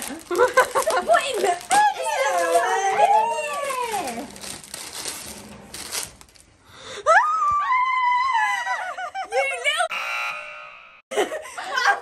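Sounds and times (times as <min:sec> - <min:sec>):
laughter: 0:00.3 - 0:01.1, 0:08.4 - 0:09.5, 0:11.1 - 0:12.0
woman squealing: 0:07.1 - 0:08.8.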